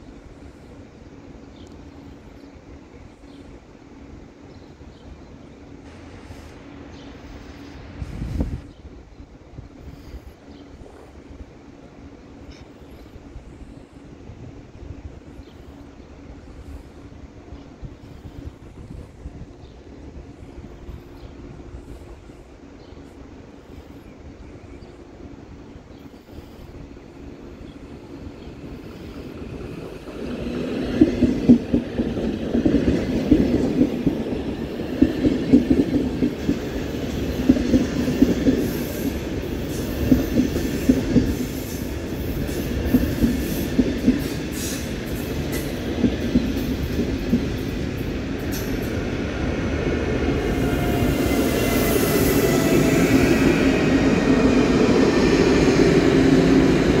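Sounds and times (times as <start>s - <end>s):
locomotive hum and high whine: 0.0s - 57.0s
train passing platform: 0.0s - 57.0s.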